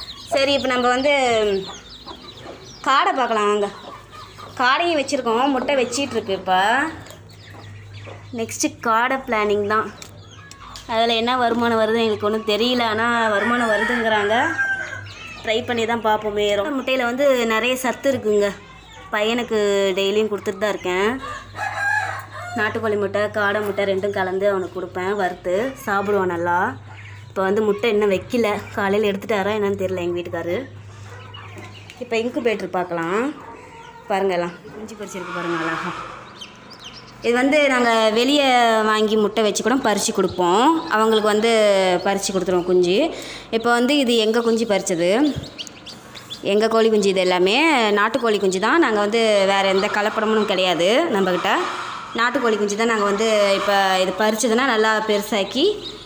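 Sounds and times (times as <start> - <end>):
chickens calling: 0.0 - 56.0
hen calling: 33.0 - 56.0
high peeps: 33.0 - 56.0.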